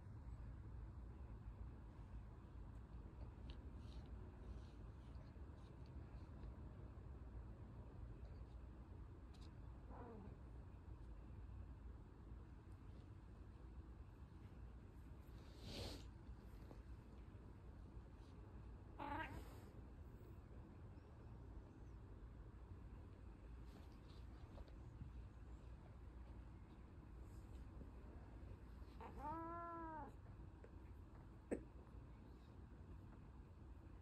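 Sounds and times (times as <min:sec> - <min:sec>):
cat meowing: 0:19.0 - 0:19.6, 0:29.0 - 0:30.2.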